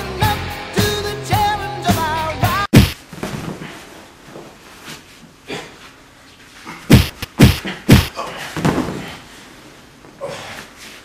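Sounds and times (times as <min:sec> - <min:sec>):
pop song with singing: 0:00.0 - 0:02.9
loud punch thump: 0:02.7 - 0:03.0, 0:06.9 - 0:08.1.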